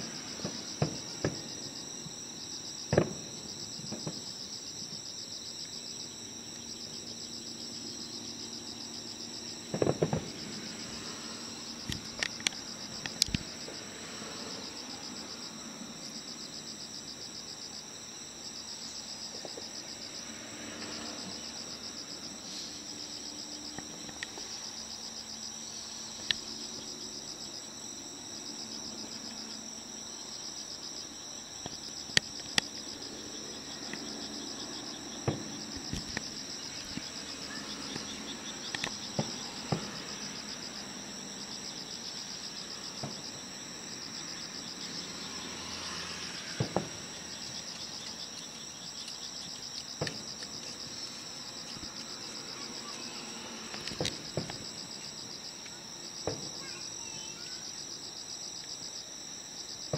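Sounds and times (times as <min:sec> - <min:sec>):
insects trilling: 0:00.0 - 0:59.9
distant fireworks popping: 0:00.2 - 0:02.2, 0:02.9 - 0:04.4, 0:09.6 - 0:13.8, 0:35.2 - 0:40.4, 0:46.4 - 0:48.6.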